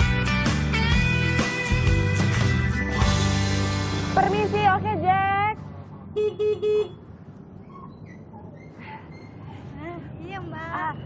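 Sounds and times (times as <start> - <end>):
scooter horn beeps: 6.2 - 7.0.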